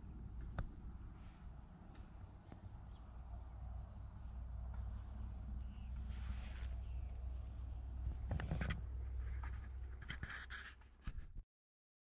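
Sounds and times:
insects chirping in pulsing trill: 0:00.0 - 0:10.0.

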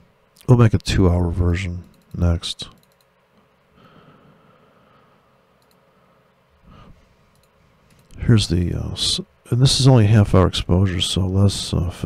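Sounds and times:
computer mouse clicks: 0:01.8 - 0:03.1, 0:05.6 - 0:05.8, 0:07.3 - 0:08.2.

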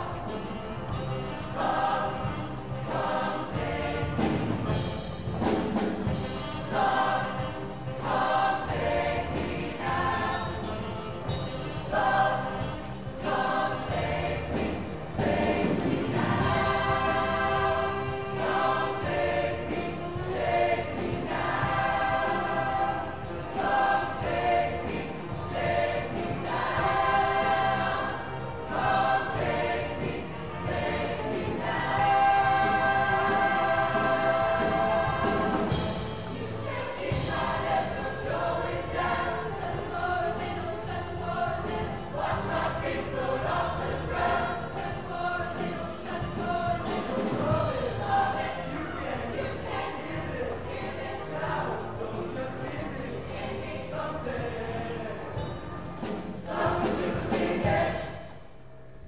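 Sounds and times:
choir singing: 0:00.0 - 0:59.0.

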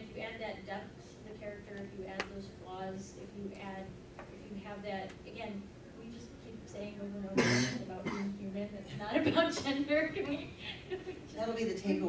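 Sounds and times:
voice: 0:00.0 - 0:12.0
woman coughing: 0:07.4 - 0:08.4.

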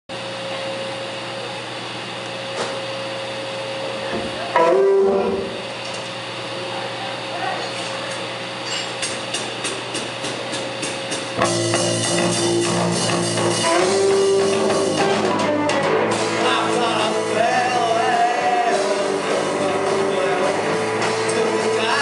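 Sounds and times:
amplifiers humming: 0:00.1 - 0:07.6, 0:11.0 - 0:22.0
electric guitar chord: 0:04.4 - 0:05.9, 0:11.4 - 0:22.0.

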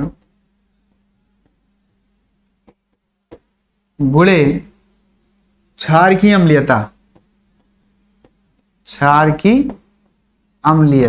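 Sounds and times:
faint electrical hum: 0:00.0 - 0:11.0
chalk tapping on blackboard: 0:00.2 - 0:01.8, 0:02.6 - 0:03.6, 0:06.9 - 0:11.0.

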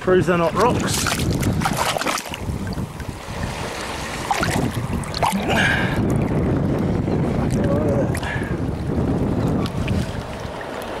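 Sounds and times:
muffled seawater sloshing: 0:00.0 - 0:11.0.

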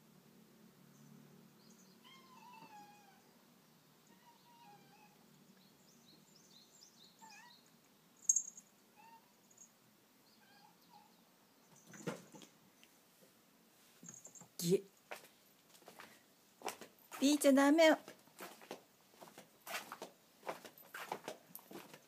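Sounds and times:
faint cat meows: 0:02.0 - 0:03.3, 0:04.0 - 0:05.3, 0:07.2 - 0:07.7, 0:08.9 - 0:09.4, 0:10.3 - 0:11.2.

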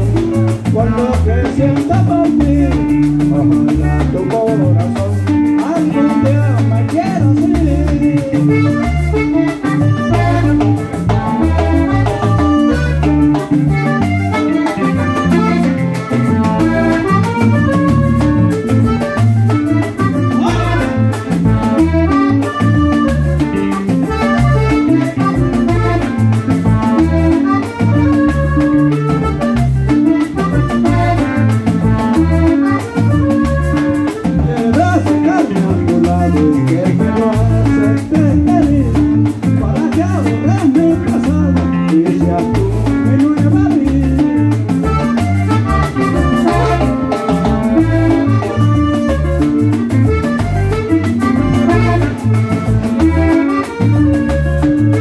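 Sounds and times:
accordion melody: 0:00.0 - 0:55.0
bass guitar: 0:00.0 - 0:55.0
drums dance beat: 0:00.0 - 0:55.0.

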